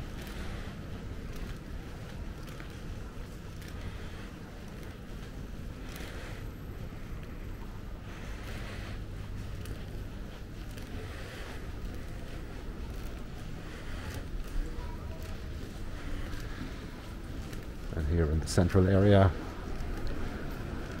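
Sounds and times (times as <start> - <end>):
low hum of terminal hall: 0.0 - 21.0.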